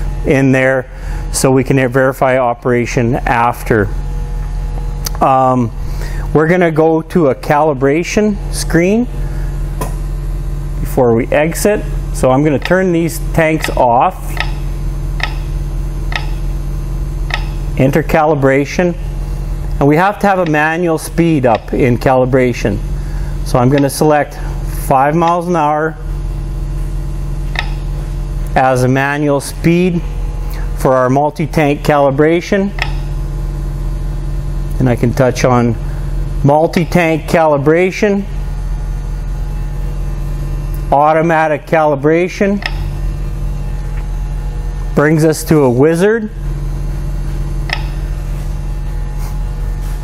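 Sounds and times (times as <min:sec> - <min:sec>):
low machine hum: 0:00.0 - 0:50.0.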